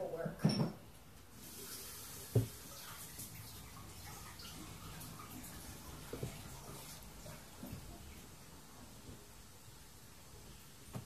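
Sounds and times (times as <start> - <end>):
tap water running: 0.9 - 11.0.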